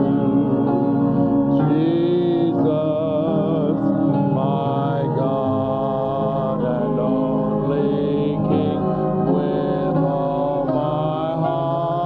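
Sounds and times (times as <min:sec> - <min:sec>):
congregation singing slow chorus: 0:00.0 - 0:12.0.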